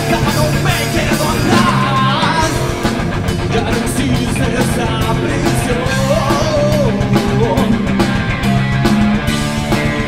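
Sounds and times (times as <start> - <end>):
drum kit with cymbal hits: 0.0 - 10.0
electric guitar: 0.0 - 10.0.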